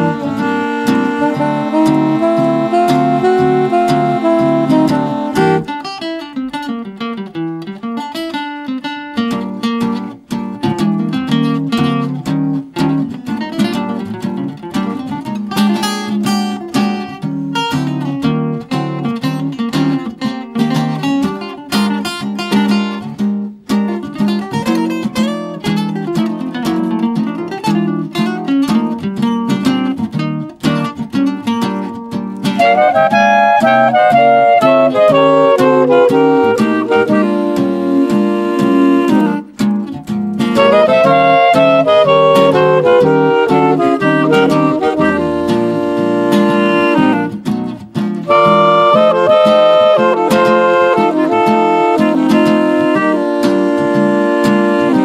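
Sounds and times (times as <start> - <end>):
reed instrument phrase: 0.0 - 5.7, 32.6 - 39.4, 40.6 - 47.4, 48.3 - 55.0
swing jazz guitar solo: 0.0 - 55.0.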